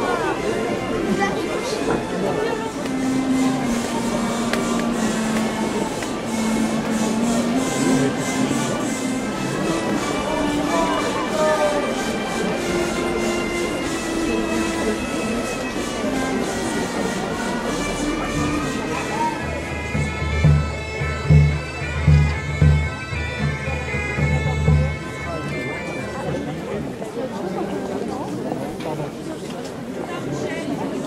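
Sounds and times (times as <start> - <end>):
wind instrument drone music: 0.0 - 27.2
crowd chatter: 0.0 - 31.0.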